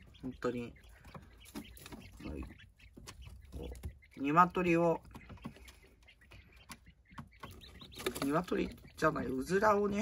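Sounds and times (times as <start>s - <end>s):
quail chicks peeping: 0.0s - 10.0s.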